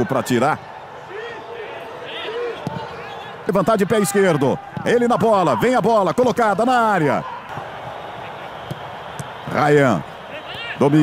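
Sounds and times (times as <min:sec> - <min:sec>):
players shouting: 0:00.0 - 0:11.0
ball kick thud: 0:08.7 - 0:09.3.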